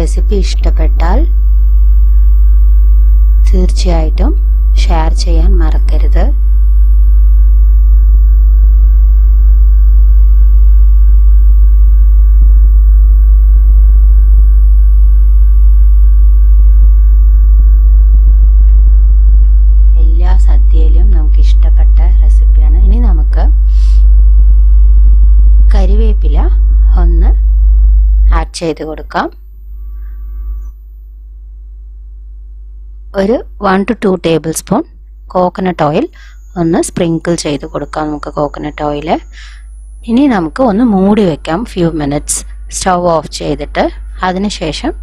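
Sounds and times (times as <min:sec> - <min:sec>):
higher steady tones: 0:00.0 - 0:32.2
low electrical hum: 0:00.0 - 0:45.0.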